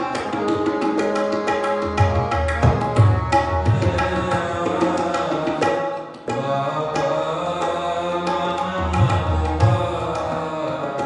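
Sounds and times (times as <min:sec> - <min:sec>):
sustained harmonium tones: 0:00.0 - 0:06.1
tabla playing: 0:00.0 - 0:11.0.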